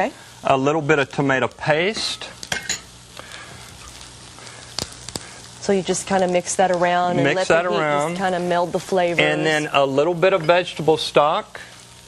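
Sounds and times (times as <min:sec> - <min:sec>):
sauce sizzling in a hot pan: 0:00.0 - 0:12.0.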